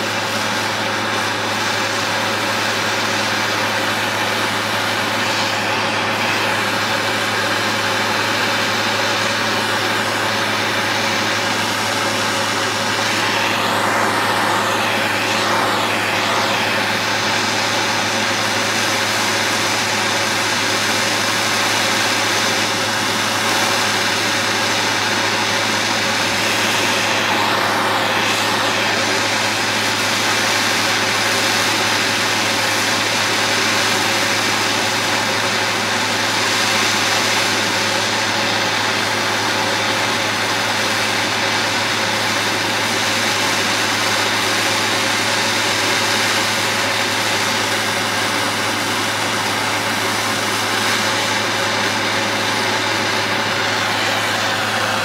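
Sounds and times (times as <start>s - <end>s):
propane torch flame hissing: 0.0s - 55.0s.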